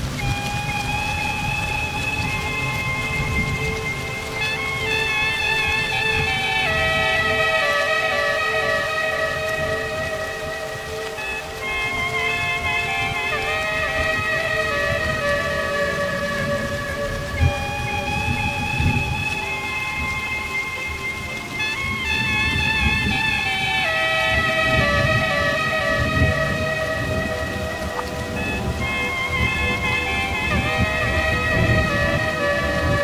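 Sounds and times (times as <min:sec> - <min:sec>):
rain: 0:00.0 - 0:33.0
rolling thunder: 0:00.0 - 0:33.0
woodwind chords held long: 0:00.0 - 0:33.0.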